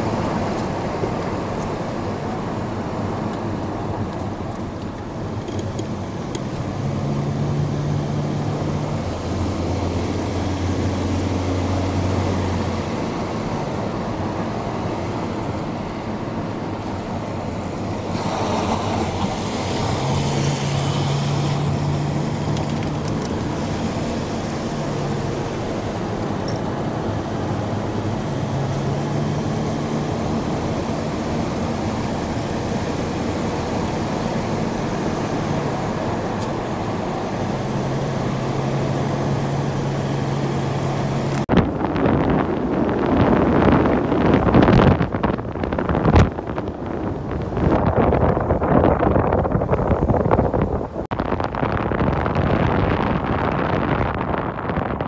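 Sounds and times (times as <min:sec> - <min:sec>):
car engine hum inside cabin: 0:00.0 - 0:55.0.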